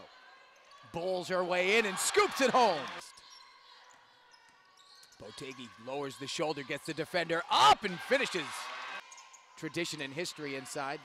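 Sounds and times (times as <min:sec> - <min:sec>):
faint arena ambience: 0:00.0 - 0:11.0.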